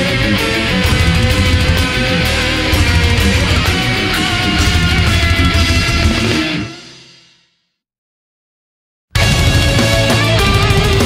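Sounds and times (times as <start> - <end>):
death metal band playing: 0.0 - 7.4, 9.2 - 11.0
final guitar chord ringing: 0.1 - 7.0.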